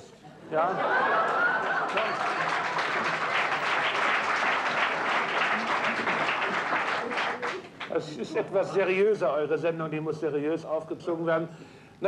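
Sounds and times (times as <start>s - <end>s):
studio audience applauding: 0.6s - 8.1s.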